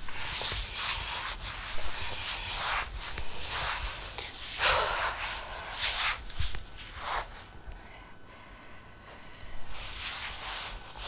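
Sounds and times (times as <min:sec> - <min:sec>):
cloth scrubbing a hard floor: 0:00.0 - 0:07.6, 0:09.7 - 0:11.0.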